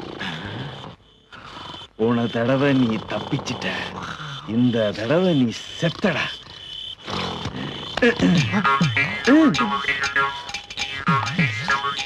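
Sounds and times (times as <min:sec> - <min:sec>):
rough growling roar: 0:01.4 - 0:05.0.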